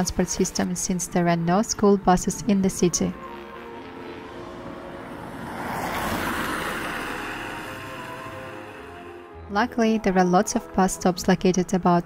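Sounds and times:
soft background music: 0.0s - 12.0s
rushing noise: 3.4s - 9.3s.

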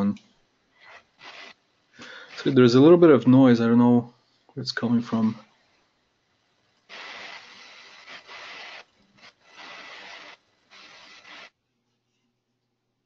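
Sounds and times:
rubbing scraping on microphone: 0.8s - 1.6s, 6.9s - 11.5s.

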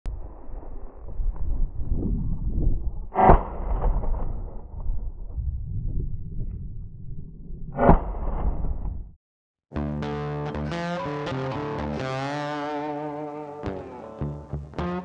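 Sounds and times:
wind buffeting microphone: 0.1s - 7.8s
loud shotgun shot: 3.2s - 4.3s.

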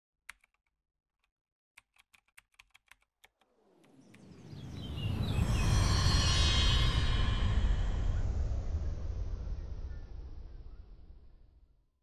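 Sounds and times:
keyboard typing clicks: 0.3s - 0.7s, 1.8s - 3.5s
noisy swell with deep low end: 4.0s - 11.9s.

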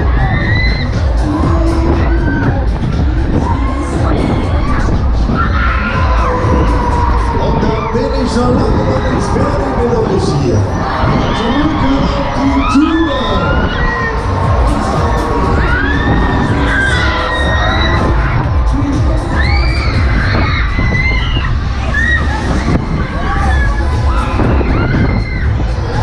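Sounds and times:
ride low rumble: 0.0s - 26.0s
riders screaming and whooping: 0.0s - 26.0s.

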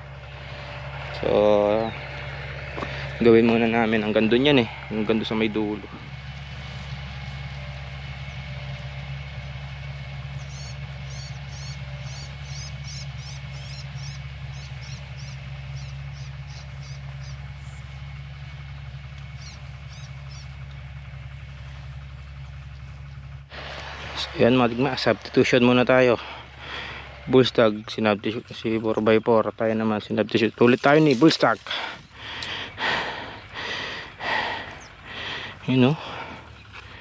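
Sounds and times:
low engine hum: 0.0s - 37.0s
bird chirping: 10.2s - 18.0s, 18.7s - 21.4s, 33.2s - 35.4s.

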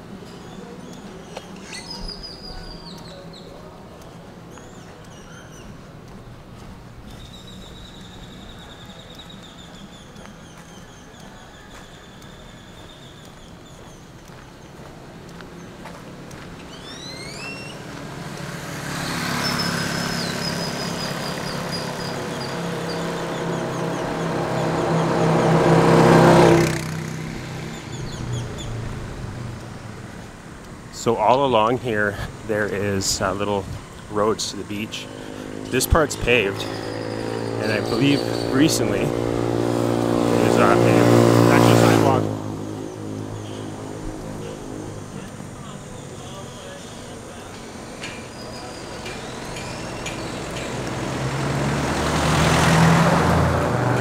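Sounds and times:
motor vehicle passing: 0.0s - 54.0s
birds chirping and whistling: 0.3s - 3.6s, 4.5s - 5.9s, 7.0s - 14.8s, 16.6s - 18.0s, 18.6s - 25.2s, 27.5s - 29.0s, 34.8s - 51.0s.

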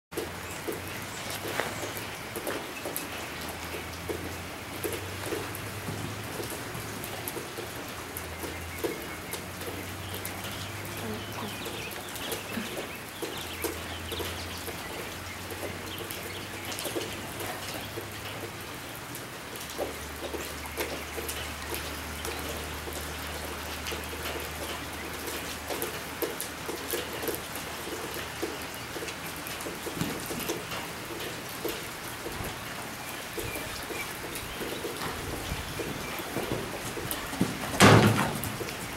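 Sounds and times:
rain on a metal roof: 0.1s - 38.9s.

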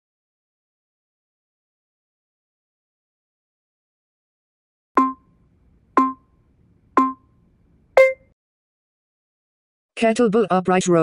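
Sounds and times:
higher-pitched timer tone: 5.0s - 5.3s, 6.0s - 6.2s, 7.0s - 7.2s, 8.0s - 8.3s
timer countdown beeps: 5.0s - 5.3s, 6.0s - 6.3s, 7.0s - 7.3s, 8.0s - 8.3s.

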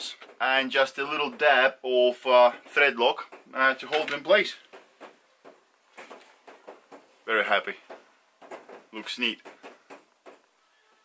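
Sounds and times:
soft handling knocks and rubs: 2.3s - 10.6s.

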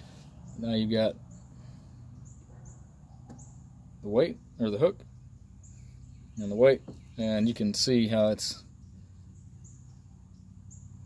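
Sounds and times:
low background hum: 0.0s - 11.0s
small bird chirps: 0.0s - 11.0s.

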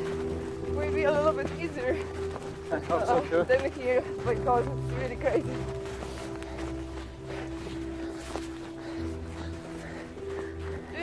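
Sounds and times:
footsteps running on snow: 0.0s - 11.0s
sustained chord music: 0.0s - 11.0s.

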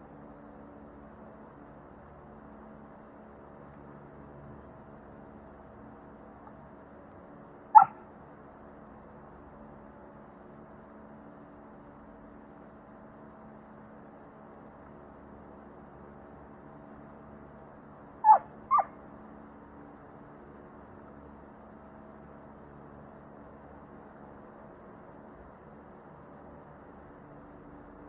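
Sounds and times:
faint background noise: 0.0s - 28.0s
dog bark: 7.7s - 8.0s, 18.2s - 19.0s.

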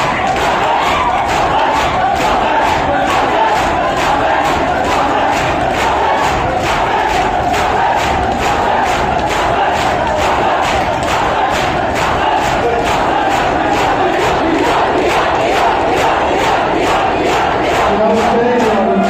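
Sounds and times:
crowd chanting: 0.0s - 19.0s
hands slapping chests: 0.0s - 19.0s.

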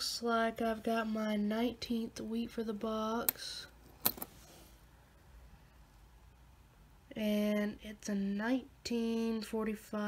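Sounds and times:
faint handling noise: 3.2s - 4.9s.

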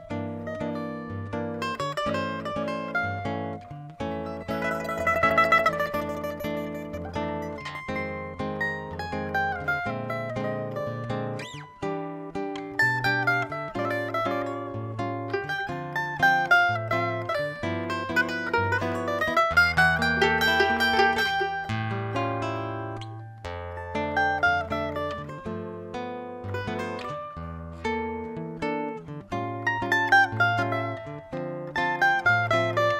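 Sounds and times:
classical guitar playing: 0.0s - 32.9s
mandolin-like plucked strings: 0.0s - 32.9s.

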